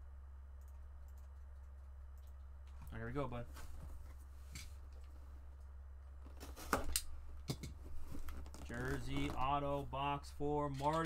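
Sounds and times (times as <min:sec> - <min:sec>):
man speaking: 0:02.8 - 0:03.6, 0:08.7 - 0:11.0.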